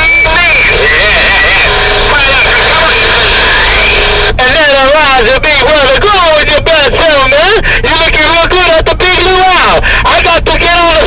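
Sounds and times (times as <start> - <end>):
garbled radio voices: 0.0 - 11.0
radio static: 0.0 - 11.0
steady tone: 0.0 - 11.0.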